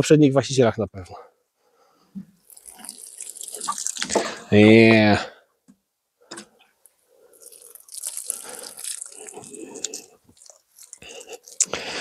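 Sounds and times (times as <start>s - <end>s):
water pouring from watering can: 2.5s - 4.5s, 7.4s - 11.7s.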